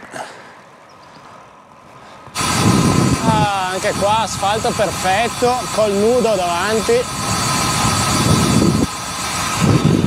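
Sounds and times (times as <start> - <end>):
muffled wind: 0.0 - 10.0
bicycle tyre hum on asphalt: 0.5 - 10.0.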